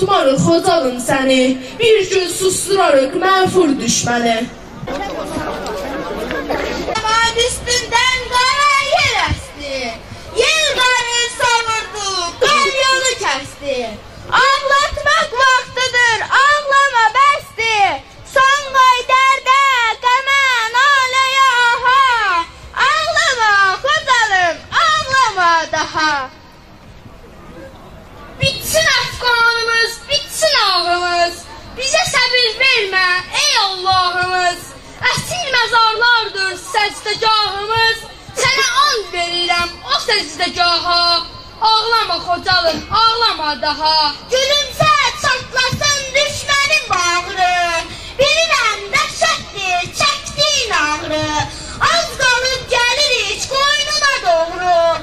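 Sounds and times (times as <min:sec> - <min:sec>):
children chattering: 0:00.0 - 0:26.4, 0:27.2 - 0:55.0
child's high voice: 0:06.8 - 0:26.4, 0:28.4 - 0:55.0.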